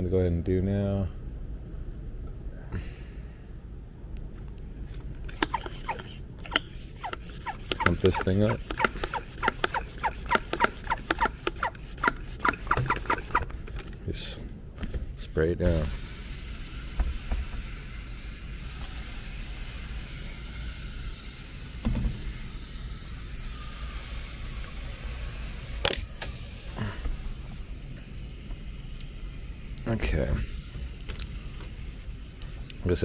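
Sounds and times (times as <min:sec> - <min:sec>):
sprayer hissing: 0:05.3 - 0:13.5, 0:15.7 - 0:33.0.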